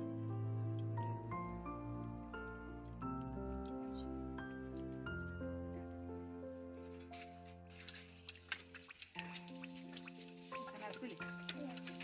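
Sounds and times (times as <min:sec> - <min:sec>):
background music with held notes: 0:00.0 - 0:12.0
egg frying in hot oil: 0:07.7 - 0:12.0.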